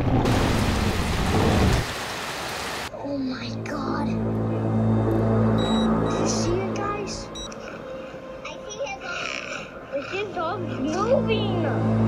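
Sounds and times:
rain hissing on water: 0:00.0 - 0:02.9.

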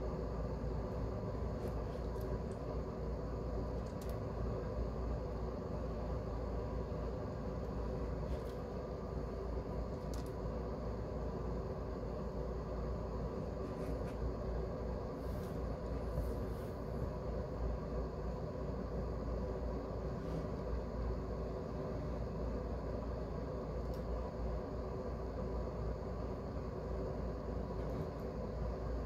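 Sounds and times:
faint hum: 0:00.0 - 0:29.0.

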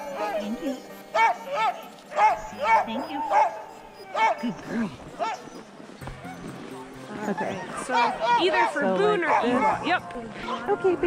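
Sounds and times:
sled dogs yipping: 0:00.0 - 0:11.0.

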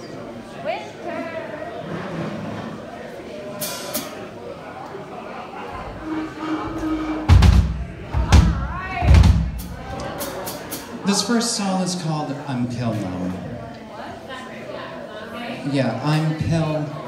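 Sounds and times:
loud low thumps: 0:05.8 - 0:10.0.

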